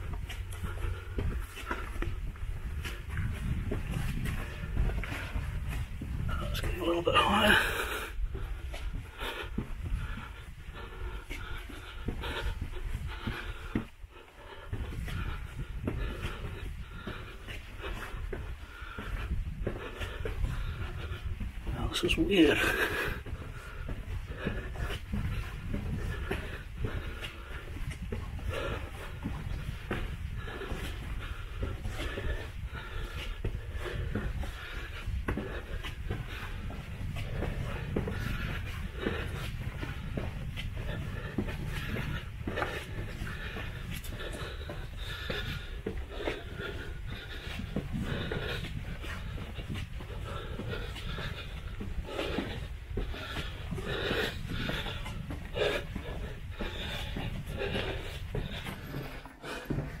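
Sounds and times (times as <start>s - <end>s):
man breathing hard: 0.0s - 60.0s
scuffing steps and rustling clothing: 0.0s - 60.0s
steady low rumble: 0.0s - 60.0s.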